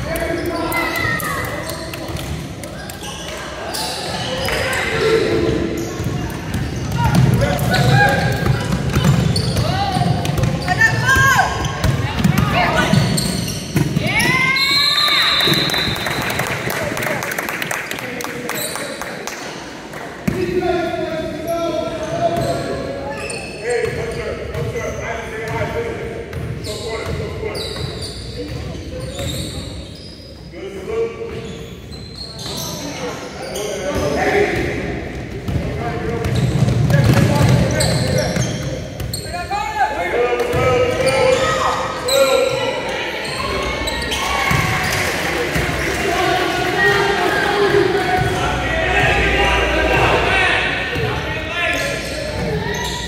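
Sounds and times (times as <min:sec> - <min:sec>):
voices of players and spectators: 0:00.0 - 0:53.0.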